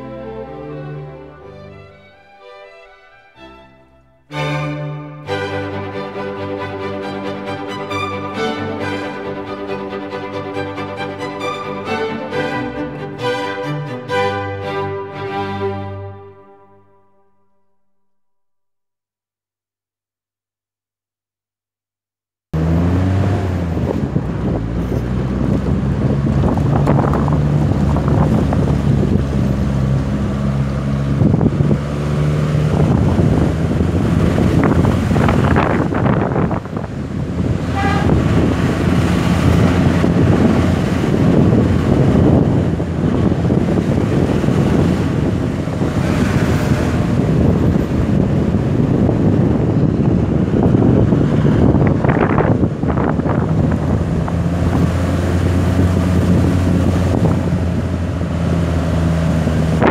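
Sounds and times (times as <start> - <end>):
vehicle engine running: 22.6 - 59.9
wind buffeting microphone: 22.9 - 59.9.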